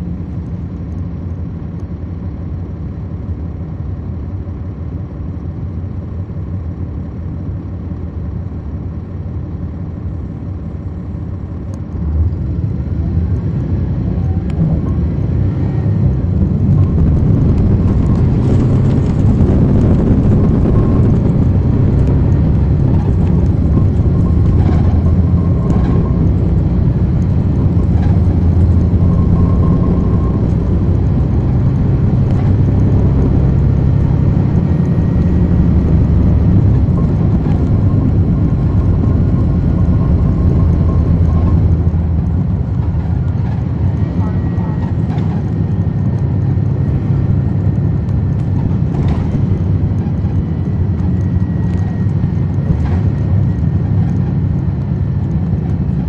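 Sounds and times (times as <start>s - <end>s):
bus engine low drone: 0.0s - 56.0s.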